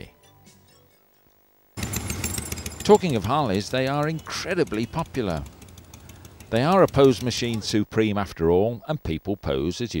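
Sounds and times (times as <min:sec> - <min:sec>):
motorcycle engine running: 0:01.8 - 0:07.9.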